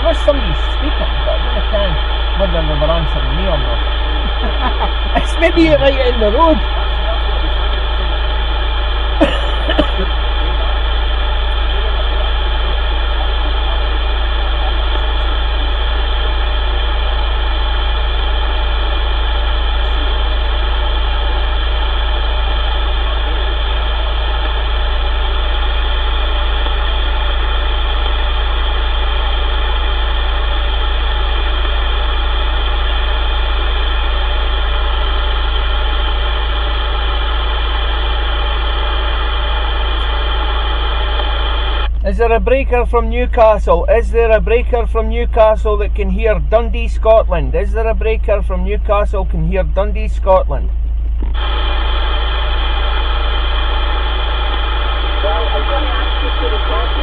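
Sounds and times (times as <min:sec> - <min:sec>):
radio static hiss and buzz: 0:00.0 - 0:50.6, 0:51.2 - 0:57.0
low hum: 0:00.0 - 0:57.0.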